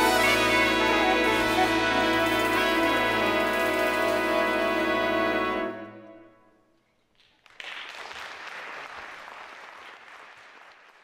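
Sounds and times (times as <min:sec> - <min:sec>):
audience applause: 0:07.3 - 0:11.0.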